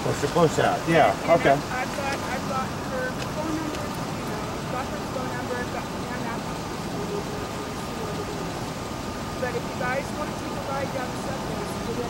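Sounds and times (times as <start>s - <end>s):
faint voices talking: 0.0s - 12.0s
traffic noise: 0.0s - 12.0s.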